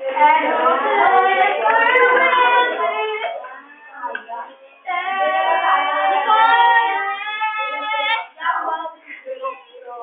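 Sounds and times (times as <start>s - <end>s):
girl singing: 0.0s - 10.0s.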